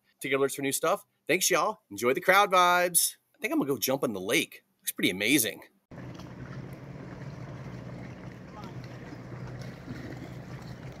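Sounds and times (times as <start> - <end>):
motorboat engine humming: 5.9 - 11.0
water wash: 5.9 - 11.0
wind: 5.9 - 11.0.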